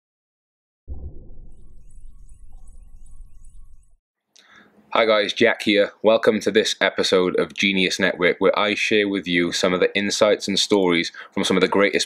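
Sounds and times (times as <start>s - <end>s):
deep low sound bed: 0.9s - 4.0s.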